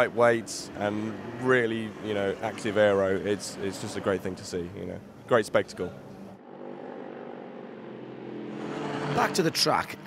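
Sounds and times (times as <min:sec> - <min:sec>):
race car engine: 0:00.0 - 0:10.0.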